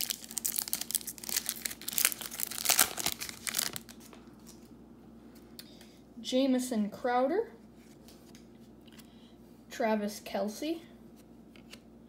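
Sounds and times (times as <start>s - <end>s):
foil wrapper tearing and crinkling: 0.0s - 4.6s.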